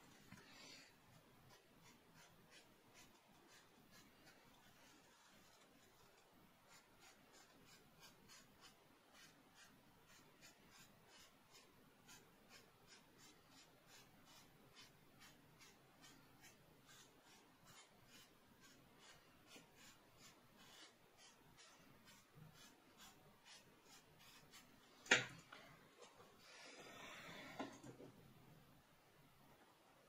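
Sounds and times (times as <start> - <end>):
pencil scratching on paper: 1.1 - 25.2.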